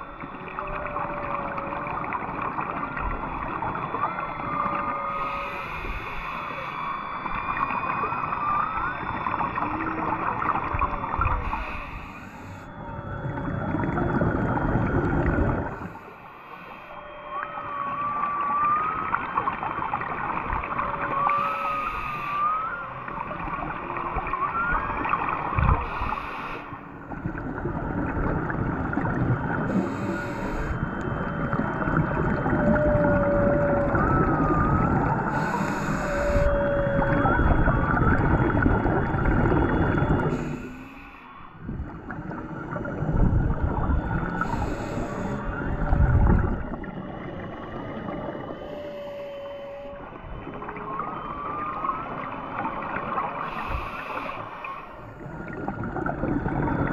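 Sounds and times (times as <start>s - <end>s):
humpback whale song: 0.0s - 56.9s
scuba breathing bubbles: 5.1s - 8.0s, 9.0s - 17.0s, 25.6s - 49.2s, 53.2s - 56.9s.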